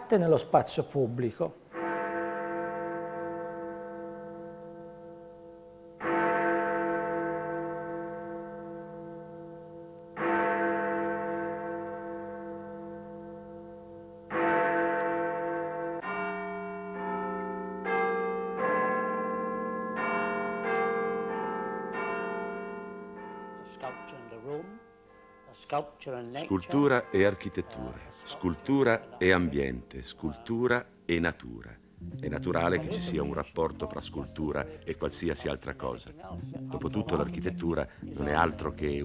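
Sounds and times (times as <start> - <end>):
bells of different pitches: 1.7 - 30.5, 31.8 - 39.0.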